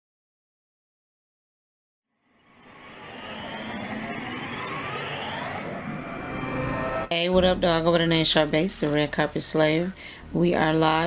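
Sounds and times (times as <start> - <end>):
rising whoosh sound effect: 2.2 - 7.1.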